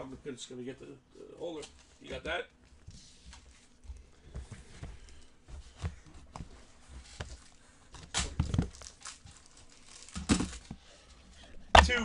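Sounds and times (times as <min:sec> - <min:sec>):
packaging rustling and crinkling: 0:04.6 - 0:11.2.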